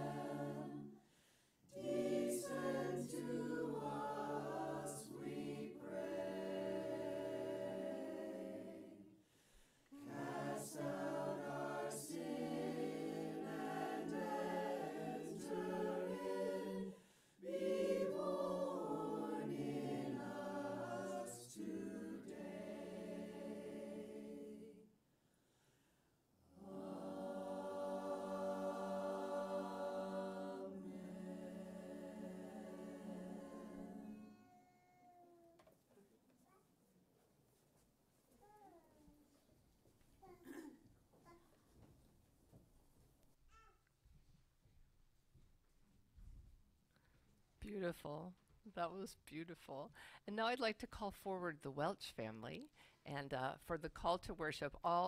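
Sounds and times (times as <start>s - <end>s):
mixed choir singing a cappella: 0.0s - 1.1s, 1.7s - 9.2s, 10.0s - 24.9s, 26.5s - 34.3s.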